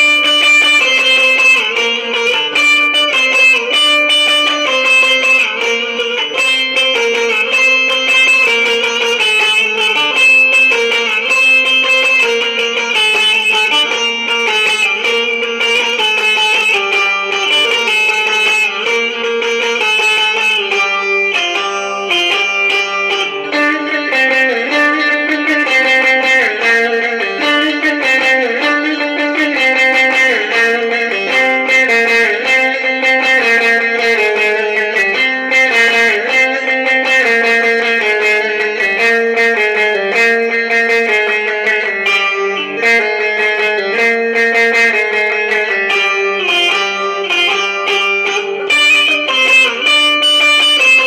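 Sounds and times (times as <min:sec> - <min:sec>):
plucked lute rapid notes: 0:00.0 - 0:51.0.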